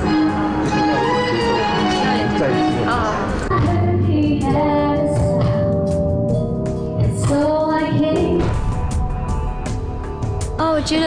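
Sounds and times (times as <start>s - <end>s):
backing music: 0.0s - 11.0s
woman singing into microphone: 2.8s - 6.0s, 6.9s - 8.6s.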